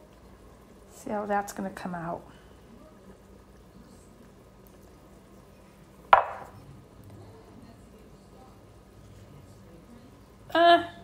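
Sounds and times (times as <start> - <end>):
bowl set down on wooden tray: 6.2 - 6.6.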